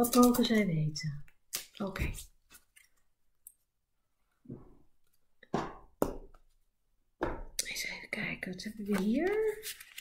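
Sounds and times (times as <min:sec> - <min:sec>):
cards being shuffled: 0:08.8 - 0:10.0.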